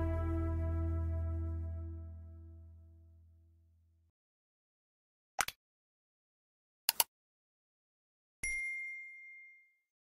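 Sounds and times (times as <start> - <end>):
bell ding: 8.4 - 9.9.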